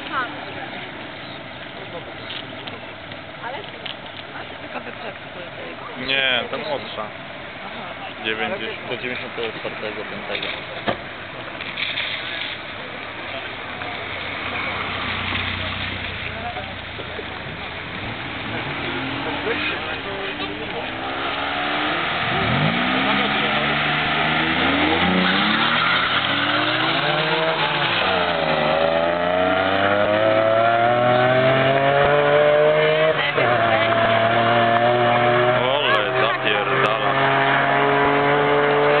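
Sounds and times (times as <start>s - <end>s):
car engines idling: 0.0s - 39.0s
crowd chatter: 0.0s - 39.0s.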